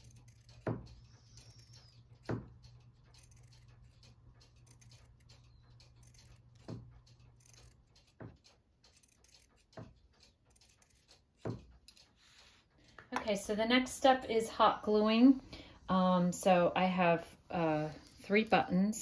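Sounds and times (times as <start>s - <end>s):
scissors snipping fabric: 0.0s - 12.5s
low steady hum: 0.0s - 19.0s.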